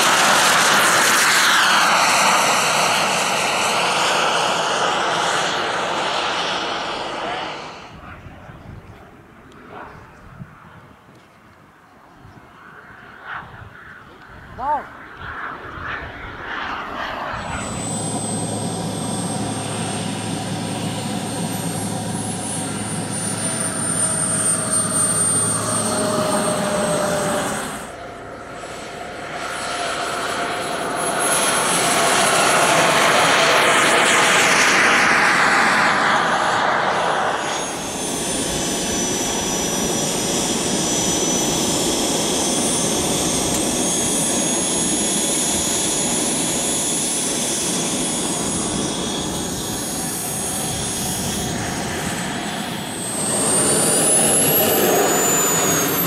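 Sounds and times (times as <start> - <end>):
jet passing by: 0.0 - 11.1, 11.7 - 56.0
turbine engine whine: 0.0 - 56.0.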